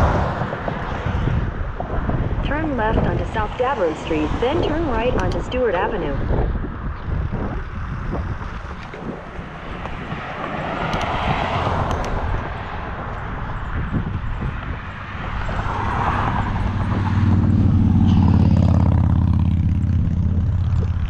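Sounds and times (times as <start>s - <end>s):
road traffic passing: 0.0s - 21.0s
wind rushing over microphone: 0.0s - 21.0s.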